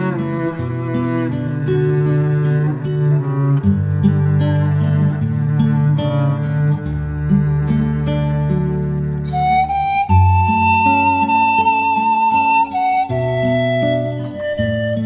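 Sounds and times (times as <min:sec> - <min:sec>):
panflute playing hymn melody: 0:09.3 - 0:15.0.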